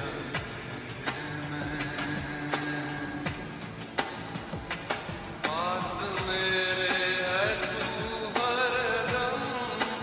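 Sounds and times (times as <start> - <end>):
slow reverb-heavy lofi music: 0.0 - 10.0.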